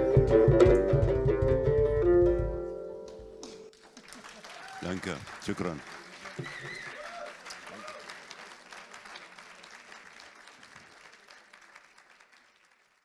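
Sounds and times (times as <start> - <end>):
audience applauding: 3.4 - 13.0.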